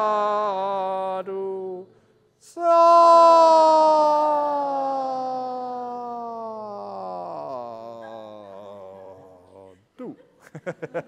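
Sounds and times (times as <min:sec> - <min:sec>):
man singing long held note: 0:00.0 - 0:09.7.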